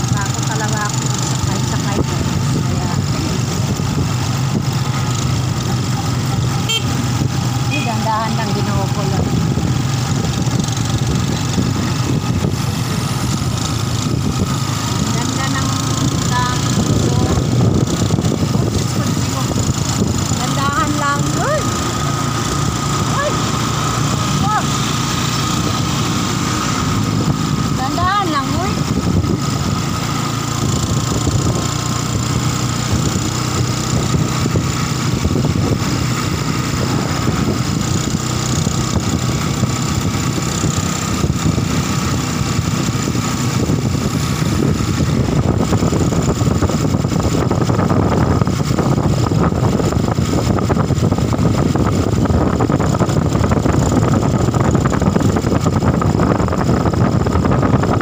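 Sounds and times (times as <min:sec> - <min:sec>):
road noise: 0:00.0 - 0:58.0
vehicle engine running: 0:00.0 - 0:58.0
wind noise: 0:00.0 - 0:58.0.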